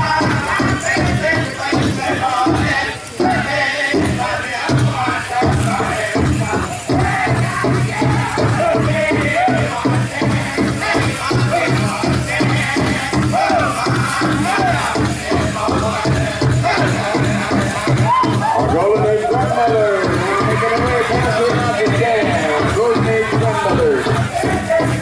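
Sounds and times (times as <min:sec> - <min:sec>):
drum group singing: 0:00.0 - 0:25.0
large drum steady beat: 0:00.0 - 0:25.0.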